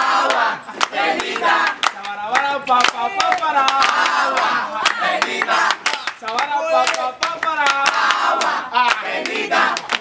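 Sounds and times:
rhythmic hand clapping: 0:00.0 - 0:10.0
voices singing: 0:00.0 - 0:10.0.

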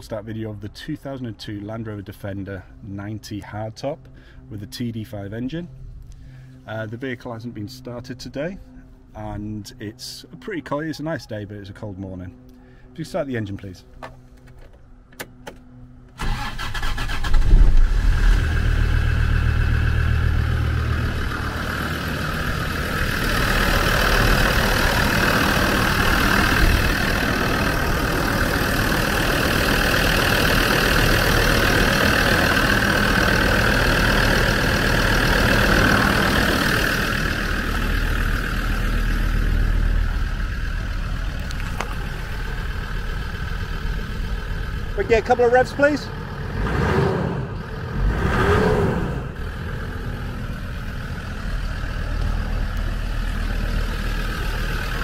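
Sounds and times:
diesel engine starting and idling: 0:14.2 - 0:55.0.

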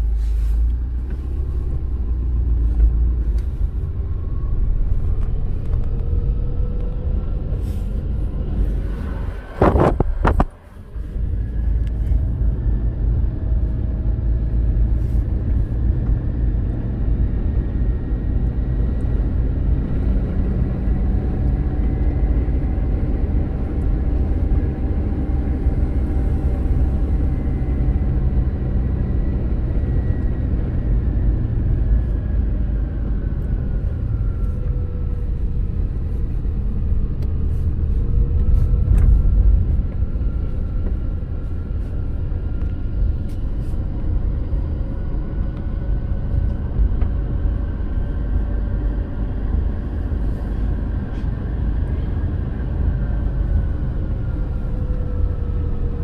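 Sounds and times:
car engine and road noise: 0:00.0 - 0:56.0.

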